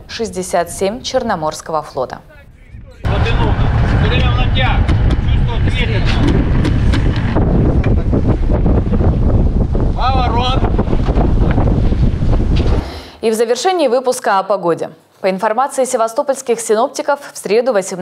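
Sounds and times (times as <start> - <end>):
wind buffeting microphone: 0.0 - 13.1.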